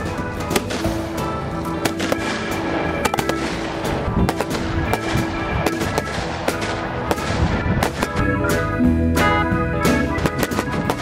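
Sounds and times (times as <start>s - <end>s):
fireworks bangs and crackles: 0.0s - 8.6s, 10.1s - 11.0s
background music with held notes: 0.0s - 11.0s.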